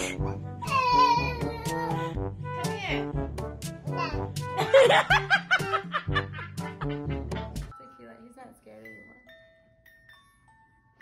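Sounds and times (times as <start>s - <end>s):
background music with steady beat: 0.0s - 9.2s
person laughing: 4.6s - 7.3s.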